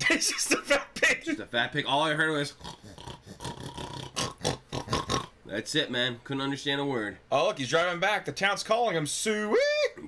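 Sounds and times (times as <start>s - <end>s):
man imitating pig oinking: 2.5s - 5.5s.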